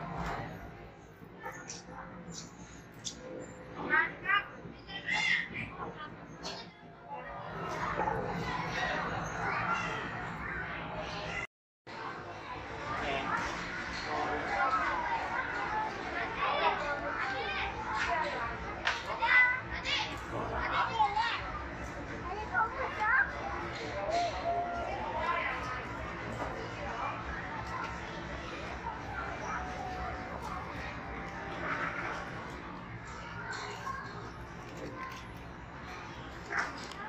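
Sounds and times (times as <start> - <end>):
children chattering: 1.3 - 37.0.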